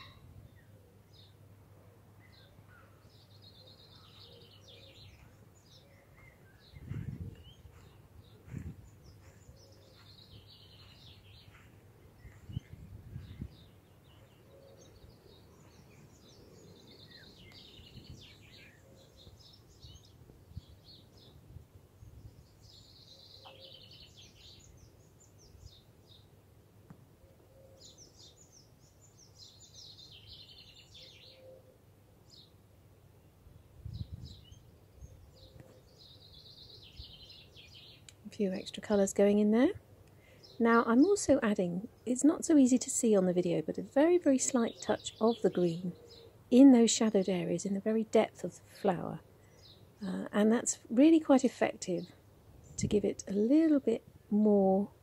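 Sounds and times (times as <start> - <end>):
faint birdsong chirps: 0.0 - 55.0
soft low thumps: 6.6 - 10.2.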